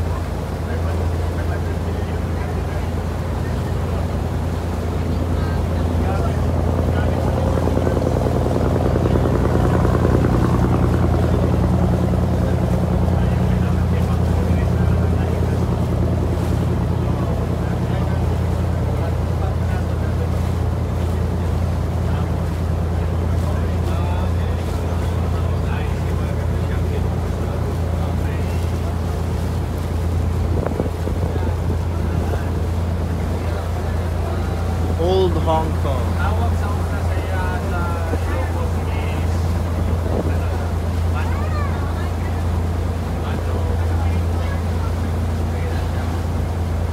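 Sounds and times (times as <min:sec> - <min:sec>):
boat engine running: 0:00.0 - 0:46.9
water splashing: 0:00.0 - 0:46.9
wind on microphone: 0:04.8 - 0:35.0, 0:35.7 - 0:42.2.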